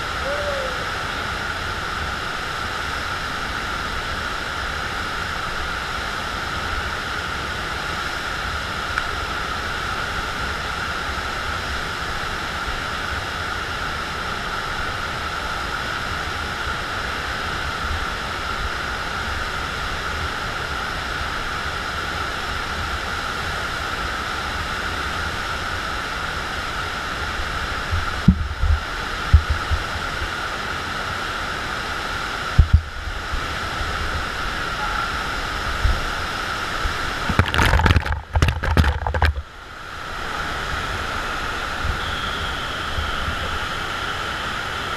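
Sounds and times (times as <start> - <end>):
rushing water: 0.0 - 44.9
low thumps: 28.0 - 29.8.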